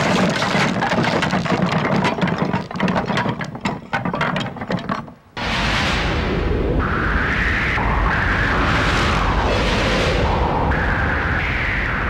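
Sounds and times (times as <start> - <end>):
wooden building collapsing: 0.0 - 5.4.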